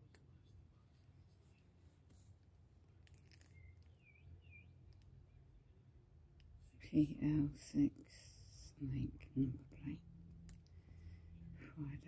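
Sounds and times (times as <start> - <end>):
low hum: 0.0 - 12.0
faint bird chirps: 3.2 - 5.6.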